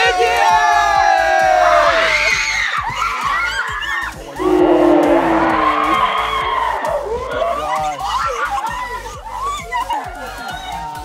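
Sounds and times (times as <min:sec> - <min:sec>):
slowed women screaming: 0:01.4 - 0:07.6.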